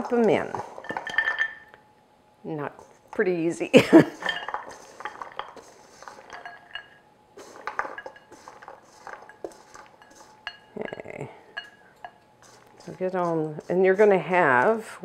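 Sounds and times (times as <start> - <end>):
frozen berries clattering: 0.0 - 1.8, 3.2 - 11.8
spatula scraping metal bowl: 4.1 - 15.0.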